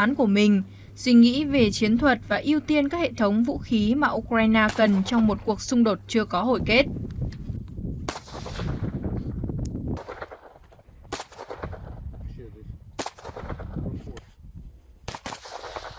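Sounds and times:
low background rumble: 0:00.0 - 0:15.9
rifle single shots: 0:04.7 - 0:05.2, 0:08.1 - 0:09.0, 0:09.9 - 0:12.0, 0:13.0 - 0:13.9, 0:15.0 - 0:15.9.

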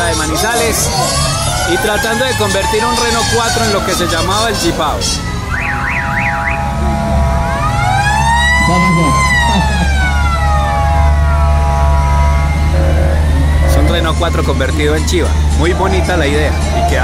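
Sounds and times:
siren wail: 0:00.0 - 0:17.0
siren warbles: 0:00.0 - 0:17.0.

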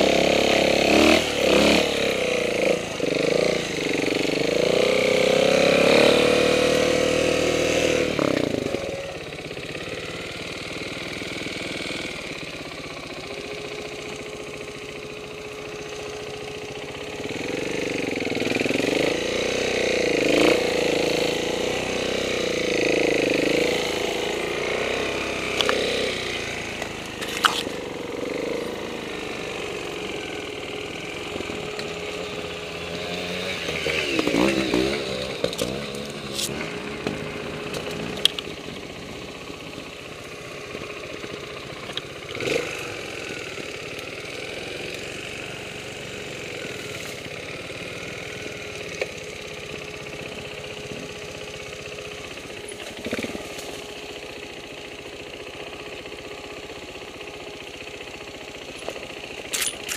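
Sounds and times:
motorcycle engine at low revs: 0:00.0 - 0:59.9.

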